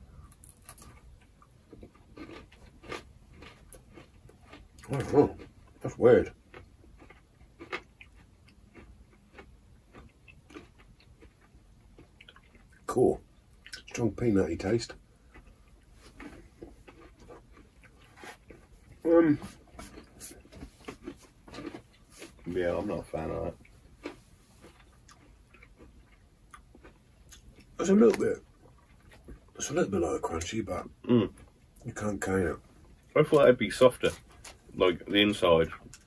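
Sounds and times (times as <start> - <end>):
chewing crunchy candy bar: 0.2 - 12.9, 15.2 - 29.5.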